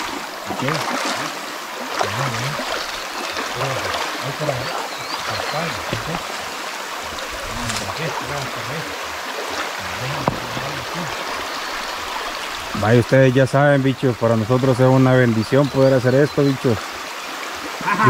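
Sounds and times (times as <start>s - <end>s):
splashing from wading: 0.0s - 12.6s
stream running over rocks: 0.0s - 18.0s
indistinct low voices: 2.0s - 2.7s, 3.5s - 6.3s.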